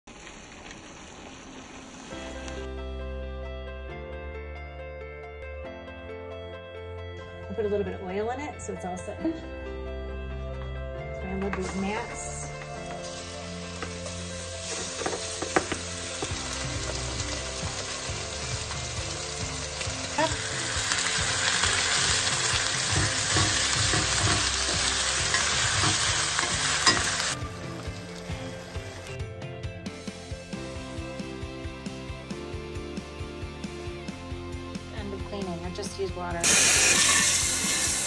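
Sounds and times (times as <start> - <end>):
food sizzling in a skillet: 0.1 - 2.8, 11.6 - 29.2, 36.4 - 38.0
background music with sustained notes: 2.1 - 38.0
pieces knocking in pan: 14.7 - 17.9, 21.2 - 27.4.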